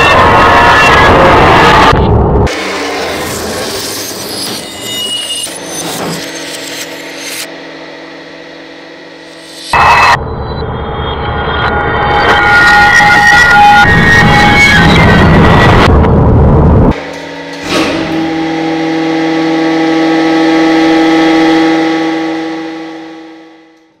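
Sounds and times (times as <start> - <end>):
long ringing chord: 17.0 - 24.0.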